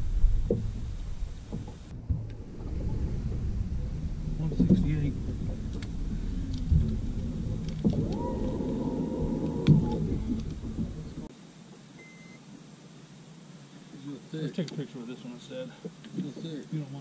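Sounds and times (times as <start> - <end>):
steady whine: 0.0 - 11.3
wind rumble on microphone: 0.0 - 11.3.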